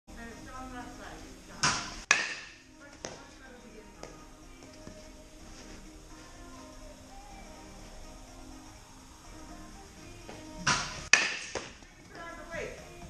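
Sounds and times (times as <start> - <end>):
background music: 0.1 - 13.0
bat cracking baseball: 1.6 - 2.6, 10.7 - 11.8.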